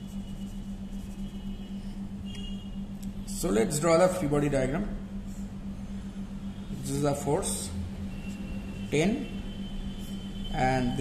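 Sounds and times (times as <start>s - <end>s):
marker squeaking on paper: 0.0s - 2.5s
low background hum: 0.0s - 11.0s.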